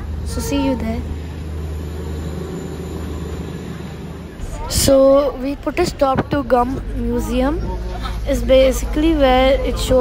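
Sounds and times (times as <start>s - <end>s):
train rumble inside coach: 0.0s - 10.0s.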